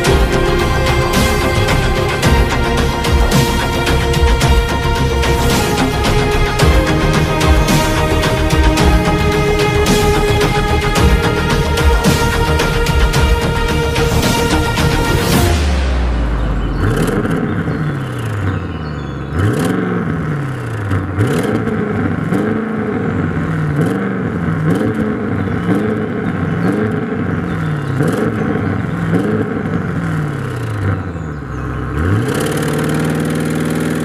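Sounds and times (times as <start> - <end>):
car engine revving: 0.0 - 34.0.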